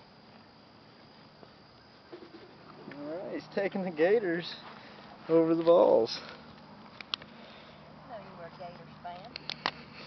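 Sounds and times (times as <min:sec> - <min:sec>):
bird cooing: 0:02.0 - 0:03.0.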